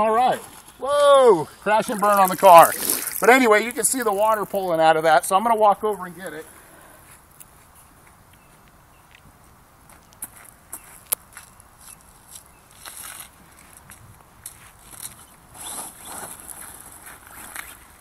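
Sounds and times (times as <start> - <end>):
rc buggy rustling over gravel: 0.0 - 0.9, 1.5 - 6.5, 11.8 - 18.0.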